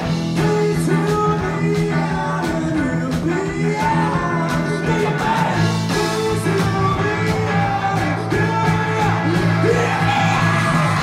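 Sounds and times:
person singing: 0.0s - 11.0s
rock band playing: 0.0s - 11.0s.

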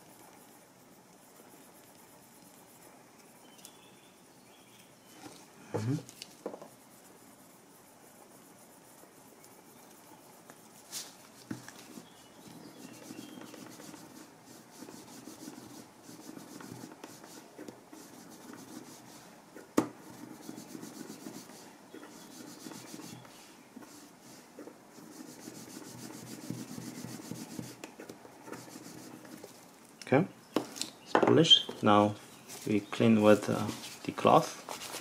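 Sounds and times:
slicker rubbing leather edge: 6.7s - 19.1s, 20.2s - 23.2s, 25.1s - 27.8s.

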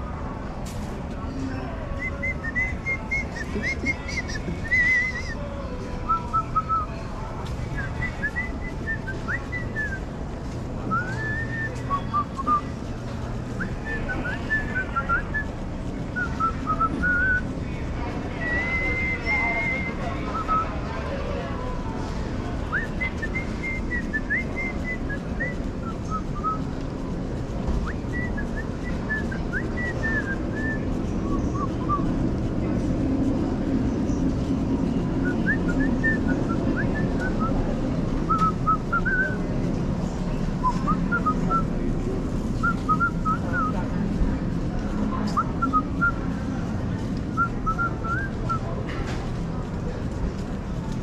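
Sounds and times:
store background hum: 0.0s - 51.0s
person whistling a tune: 2.0s - 5.4s.

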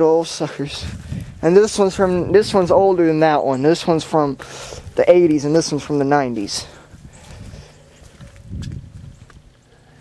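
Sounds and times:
footsteps on concrete and grass: 0.2s - 10.0s.

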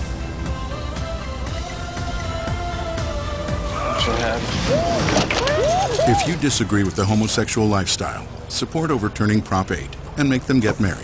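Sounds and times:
steady background rush: 0.0s - 11.0s.

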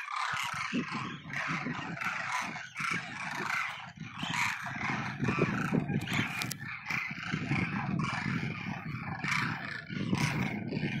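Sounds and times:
flock of cranes calling: 0.0s - 11.0s.

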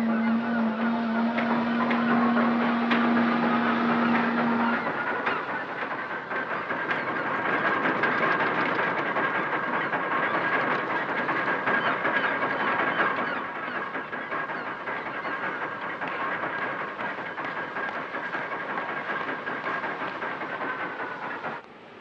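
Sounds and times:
ship's horn: 0.0s - 5.0s
rattling and clanking: 0.0s - 21.6s.

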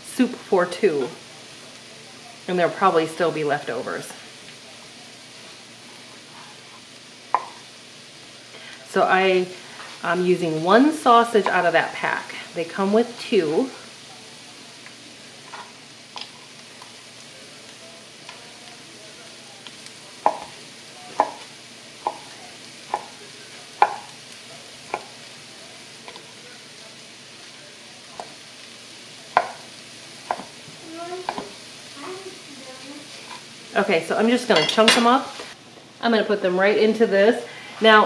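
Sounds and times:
vegetables sizzling in skillet: 0.0s - 38.0s
knife chopping on cutting board: 20.2s - 20.5s, 23.8s - 24.1s, 29.3s - 29.6s, 30.3s - 30.5s.

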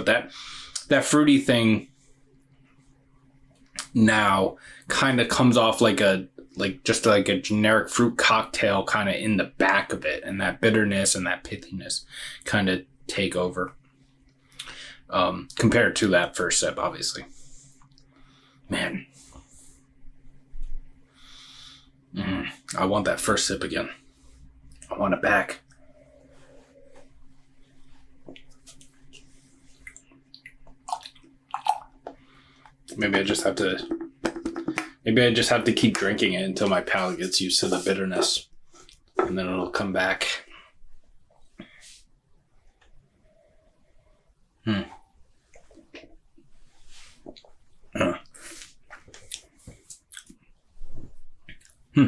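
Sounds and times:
man sipping and swallowing: 28.3s - 32.8s, 44.8s - 46.2s, 47.0s - 47.6s.

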